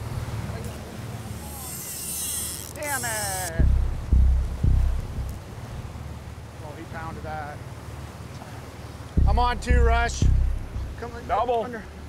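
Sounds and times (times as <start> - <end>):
boat engine rumble: 0.0 - 12.0
wind buffeting microphone: 3.6 - 6.4, 9.2 - 11.5.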